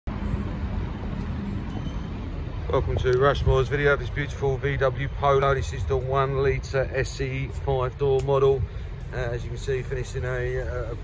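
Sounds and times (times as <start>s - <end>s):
low outdoor rumble: 0.1s - 11.0s.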